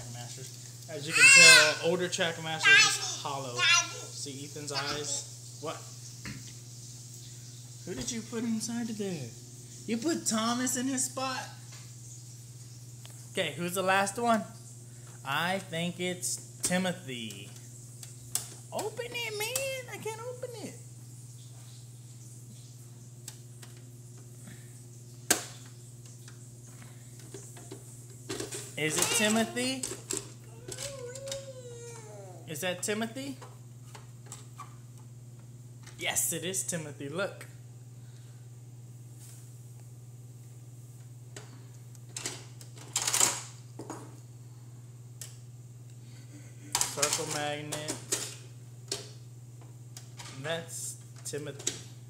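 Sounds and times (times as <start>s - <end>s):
steady low hum: 1.7s - 52.0s.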